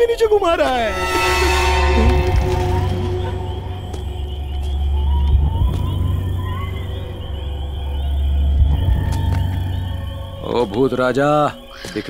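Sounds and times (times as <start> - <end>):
thin high sustained tones: 0.5 - 8.6
deep steady drone: 0.8 - 10.7.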